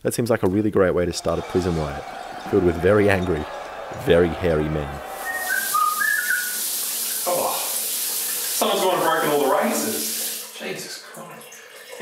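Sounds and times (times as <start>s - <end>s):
shower spray on tiles: 5.1s - 12.0s
person whistling: 5.2s - 7.3s.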